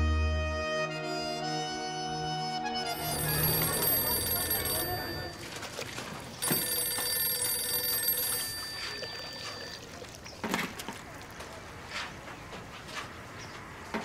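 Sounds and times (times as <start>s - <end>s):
telephone ringing: 2.9s - 10.0s.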